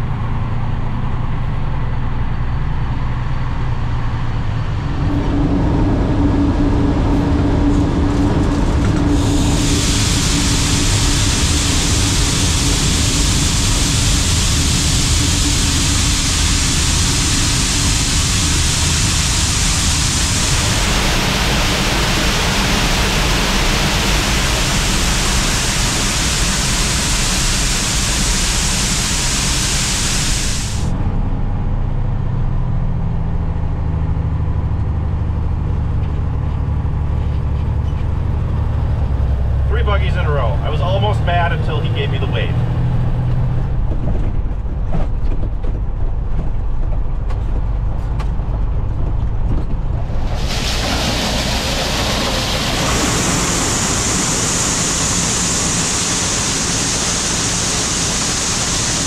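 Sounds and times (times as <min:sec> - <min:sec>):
truck engine idling: 0:03.5 - 0:31.0, 0:47.5 - 0:59.0
grain pouring through grate: 0:50.1 - 0:59.0.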